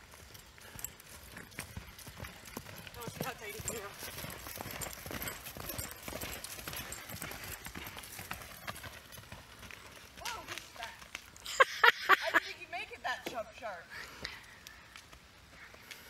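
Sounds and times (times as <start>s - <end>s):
horse hooves cantering on sand: 0.0s - 13.7s.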